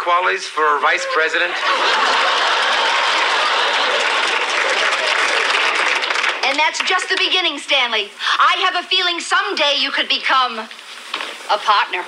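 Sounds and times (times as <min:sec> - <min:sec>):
audience laughing: 0:01.0 - 0:06.3
audience applauding: 0:01.7 - 0:07.4.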